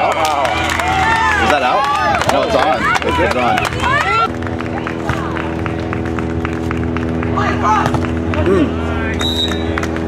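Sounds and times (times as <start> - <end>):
crowd hand claps: 0.0 - 10.0
steady low hum: 0.0 - 10.0.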